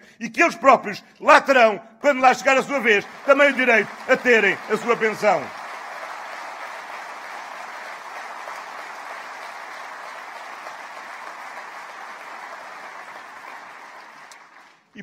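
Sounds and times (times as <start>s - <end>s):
audience applauding: 2.1s - 14.9s.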